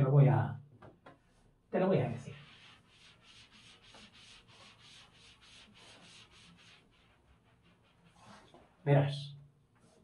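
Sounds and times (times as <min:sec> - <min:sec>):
eraser rubbing chalkboard: 0:02.2 - 0:08.7, 0:09.8 - 0:10.0.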